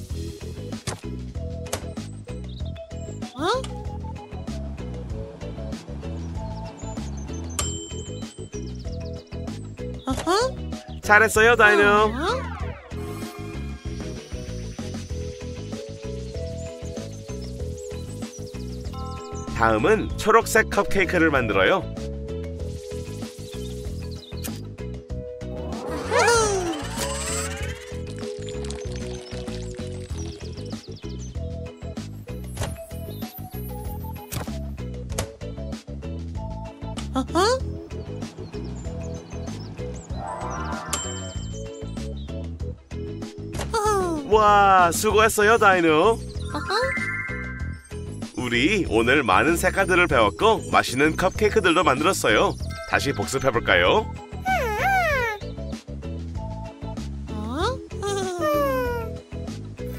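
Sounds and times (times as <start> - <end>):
light background music: 0.0 - 59.9
cartoon dinosaur squeal: 25.9 - 27.8, 54.5 - 55.5.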